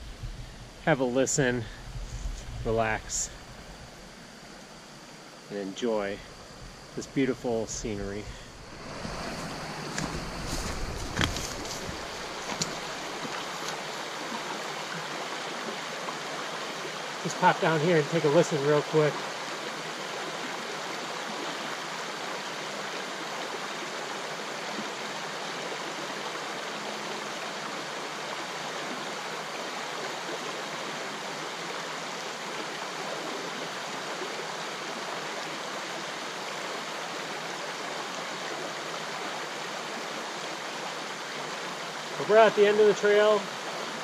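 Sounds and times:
river water rushing over stones: 2.8s - 44.0s.

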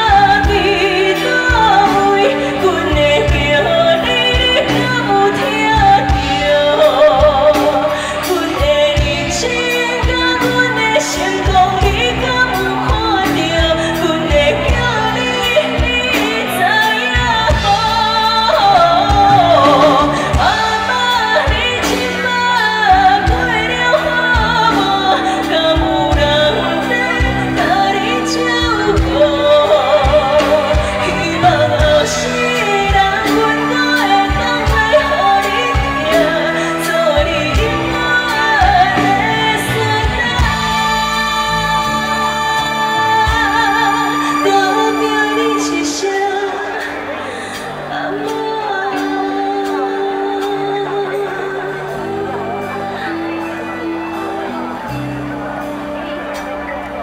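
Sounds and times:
backing music with drum beat: 0.0s - 57.0s
woman singing into microphone: 0.0s - 57.0s.

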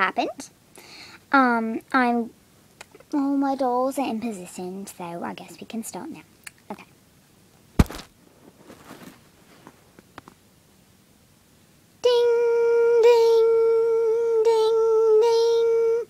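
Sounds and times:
sharp knock: 7.8s - 8.1s
person humming high note: 12.1s - 16.0s.

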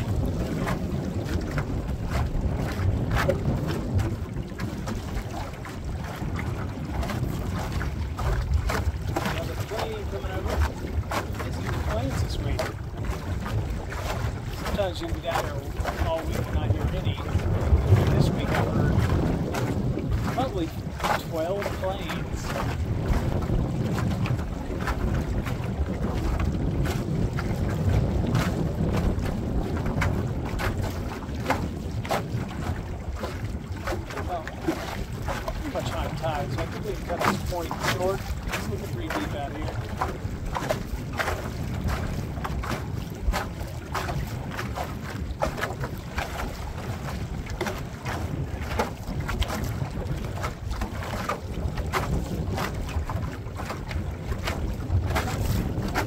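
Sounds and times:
boat low rumble: 0.0s - 56.0s
water slapping metal boat hull: 0.0s - 56.0s
wind buffeting microphone: 0.0s - 56.0s.

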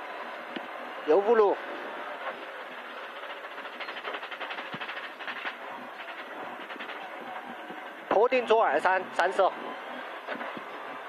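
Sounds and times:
car engine and road noise: 0.0s - 11.0s
fast pulsing rattle: 1.1s - 9.4s.

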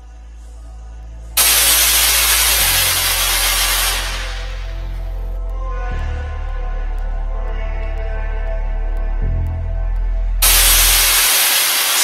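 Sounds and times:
music bass notes: 0.0s - 12.0s
loud even hiss: 1.4s - 4.8s, 10.4s - 12.0s.

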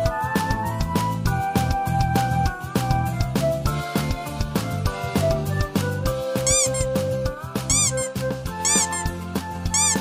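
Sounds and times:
background music with beat: 0.0s - 10.0s
kitten mewing: 7.7s - 9.1s.

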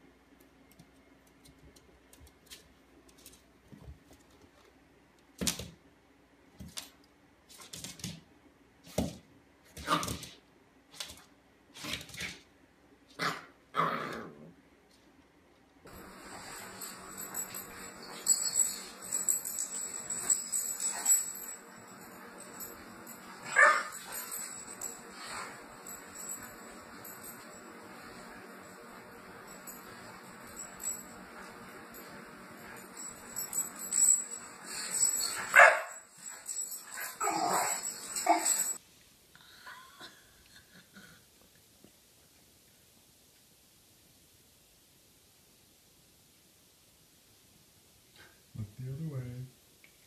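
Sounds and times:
puppy barking: 23.5s - 24.0s, 35.4s - 36.0s.

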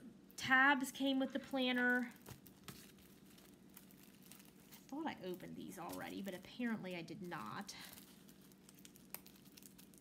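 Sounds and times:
plastic wrapping crinkling: 1.0s - 10.0s.

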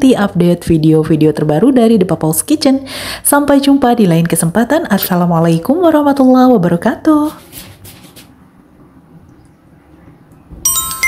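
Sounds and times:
bell-like chime ding: 10.6s - 11.0s.

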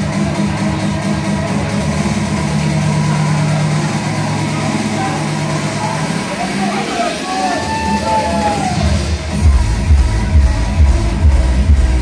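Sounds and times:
club dance music: 0.0s - 12.0s
crowd noise: 0.0s - 12.0s.

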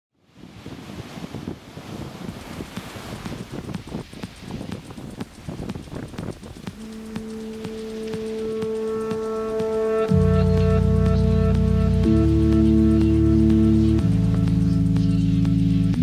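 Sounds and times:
wind: 0.1s - 16.0s
sea surf: 0.2s - 16.0s
music with held notes: 6.6s - 16.0s.

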